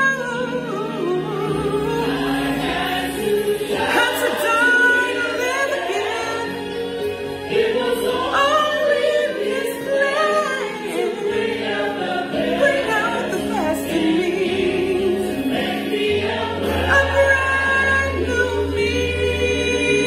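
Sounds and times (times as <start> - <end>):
woman singing gospel song: 0.0 - 2.6, 3.7 - 6.6, 8.1 - 15.5, 16.7 - 20.0
musical accompaniment: 0.0 - 20.0.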